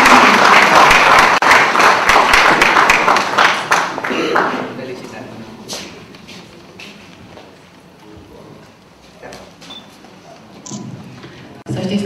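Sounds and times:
low background noise: 0.0 - 12.0
footsteps on hard floor: 5.7 - 7.6.

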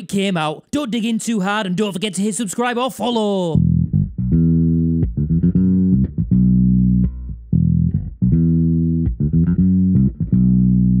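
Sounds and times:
funk bass line: 3.5 - 11.0.

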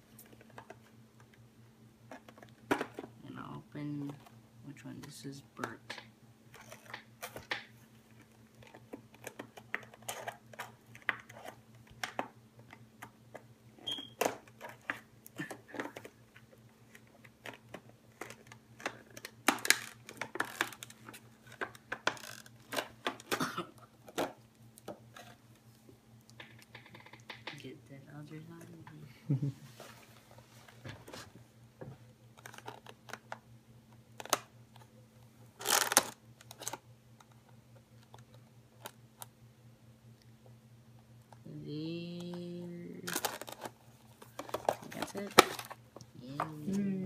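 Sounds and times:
faint low hum: 0.0 - 47.0
plastic box clicking and crackling: 16.9 - 23.4, 32.4 - 33.4, 34.1 - 34.9, 43.1 - 46.1.

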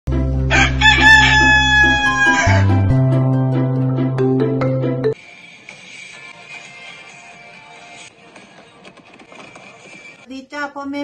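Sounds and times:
background music with low drone: 0.1 - 5.2
rooster crowing: 0.5 - 2.9.

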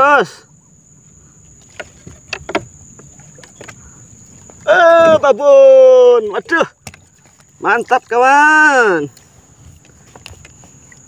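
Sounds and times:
knocks on wooden canoe hull: 1.7 - 3.8, 6.8 - 7.1.

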